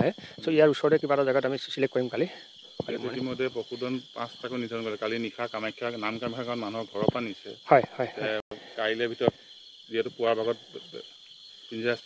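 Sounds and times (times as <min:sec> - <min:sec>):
man speaking: 0:00.0 - 0:09.3, 0:09.9 - 0:11.0, 0:11.7 - 0:12.0
insects chirring at night: 0:00.0 - 0:12.0.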